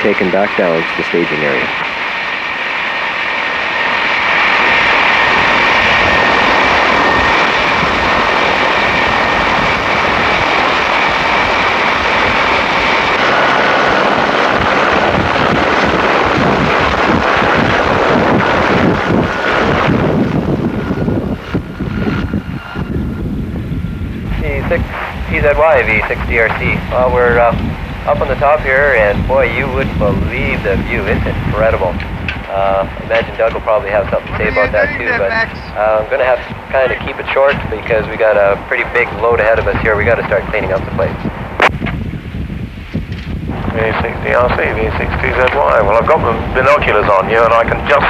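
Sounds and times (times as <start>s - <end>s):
helicopter engine whine: 0.0s - 48.0s
helicopter rotor noise: 0.0s - 48.0s.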